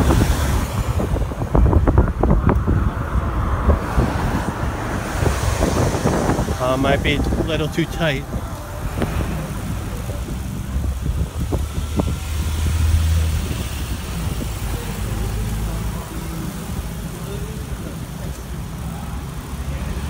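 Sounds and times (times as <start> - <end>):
traffic engines rumbling: 0.0 - 20.0.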